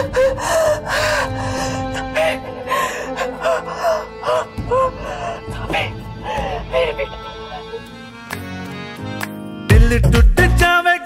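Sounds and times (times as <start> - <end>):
woman sobbing with gasping cries: 0.0 - 7.9
background music with sustained tones: 0.0 - 11.0.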